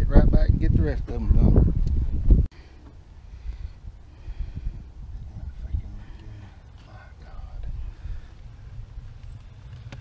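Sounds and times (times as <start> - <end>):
wind buffeting microphone: 0.0 - 2.5, 3.2 - 10.0.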